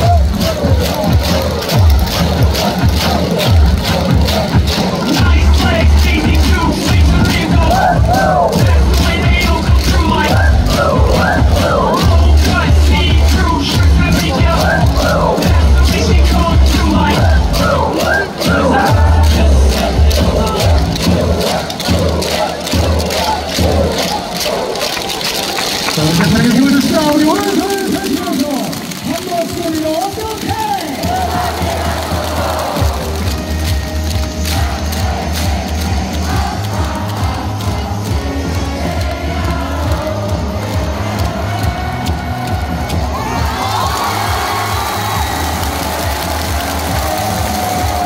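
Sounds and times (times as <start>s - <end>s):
dance music over loudspeakers: 0.0s - 48.0s
large crowd noise: 0.0s - 48.0s
man calling over loudspeakers: 4.8s - 21.0s, 25.8s - 31.5s.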